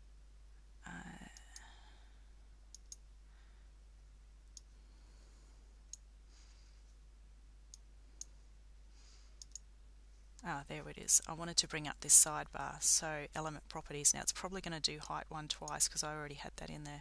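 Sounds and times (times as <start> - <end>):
faint low hum: 0.0 - 17.0
computer mouse clicking: 2.7 - 3.0, 9.4 - 9.7.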